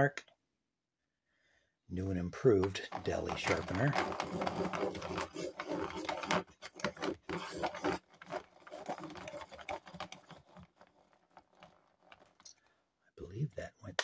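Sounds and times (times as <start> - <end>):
pencil sharpener cranking: 2.6 - 12.8.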